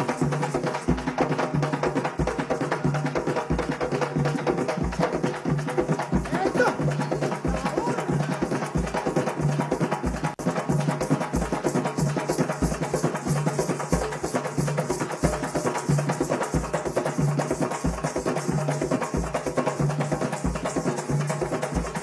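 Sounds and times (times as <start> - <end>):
drums and percussion rhythm: 0.0 - 22.0.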